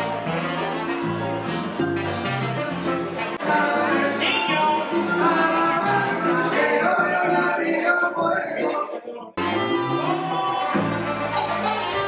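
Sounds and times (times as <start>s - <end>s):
live band music: 0.0s - 6.8s, 9.4s - 12.0s.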